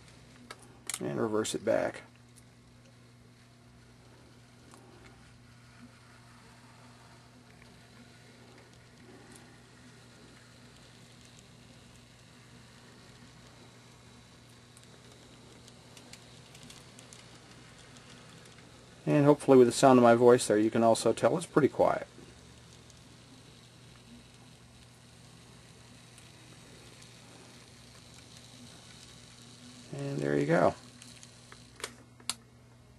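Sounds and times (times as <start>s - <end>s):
model train hum: 0.0s - 32.4s.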